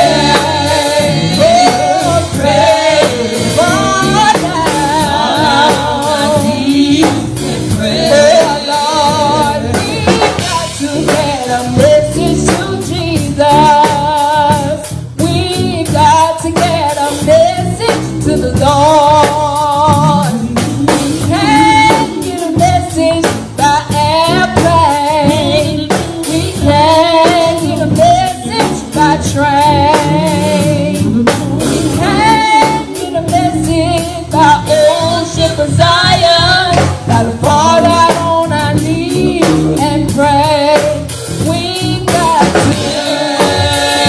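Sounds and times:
live band with drums: 0.0s - 44.0s
woman singing gospel: 0.0s - 44.0s.

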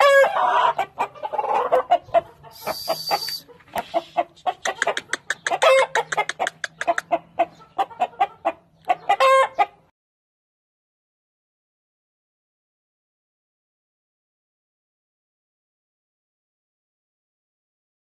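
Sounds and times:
chicken calls: 0.0s - 9.9s
chickens clucking: 0.0s - 9.9s
brief hiss: 2.6s - 4.2s.

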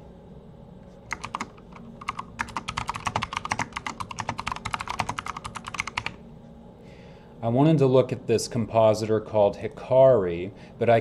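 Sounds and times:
typing on computer keyboard: 1.1s - 6.2s.

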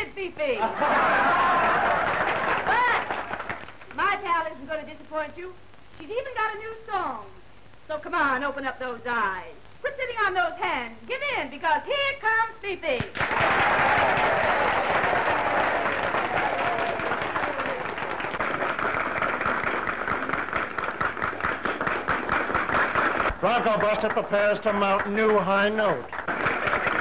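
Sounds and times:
audience applauding: 0.7s - 3.9s, 13.1s - 27.0s.

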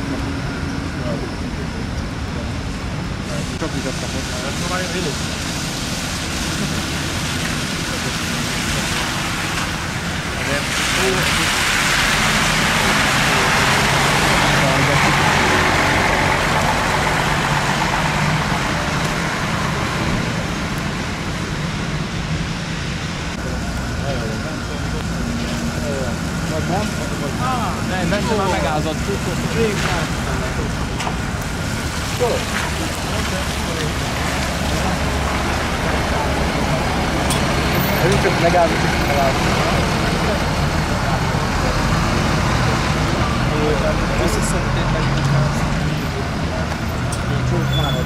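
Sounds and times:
bus engine hum: 0.0s - 48.0s
tyre hiss on wet road: 3.3s - 19.5s.

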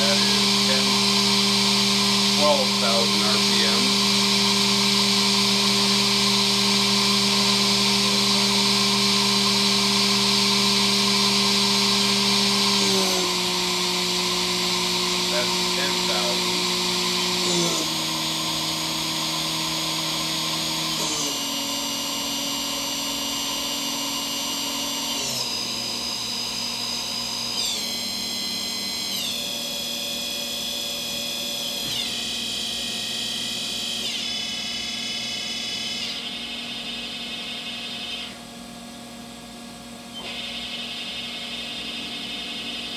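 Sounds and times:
mill spindle whining: 0.0s - 42.9s.

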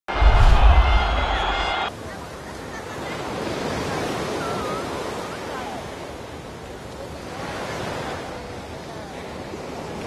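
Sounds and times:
broadcast intro sting: 0.1s - 1.9s
surf on a beach: 0.1s - 10.0s
wind: 0.1s - 10.0s.

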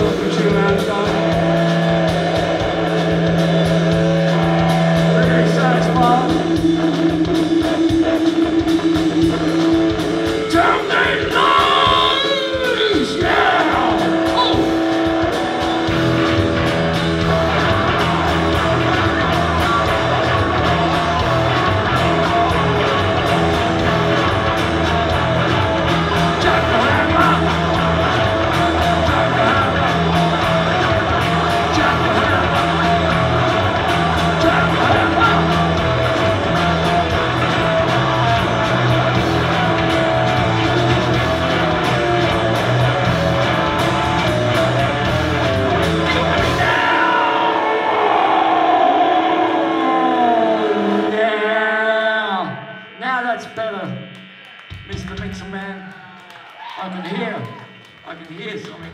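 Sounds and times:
person singing: 0.0s - 2.6s, 5.0s - 6.7s, 10.4s - 14.8s, 26.1s - 40.0s, 46.0s - 52.7s
bass guitar: 0.0s - 56.3s
distorted electric guitar: 0.0s - 58.9s
drums: 0.0s - 58.9s.

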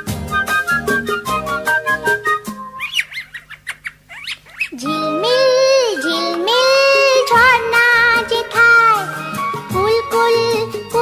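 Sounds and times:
music track: 0.0s - 2.9s, 4.8s - 11.0s
short bird chirps: 2.8s - 4.8s
child singing: 4.8s - 11.0s.

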